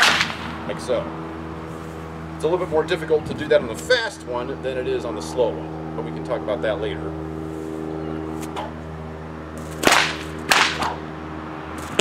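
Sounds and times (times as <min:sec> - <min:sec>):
bullwhip cracking: 0:00.0 - 0:00.6, 0:08.4 - 0:08.8, 0:09.6 - 0:11.1.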